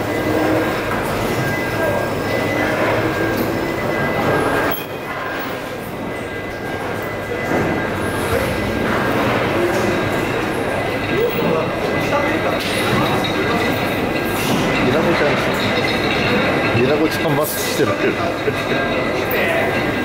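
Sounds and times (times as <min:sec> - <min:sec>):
distant voices: 0:00.0 - 0:20.0.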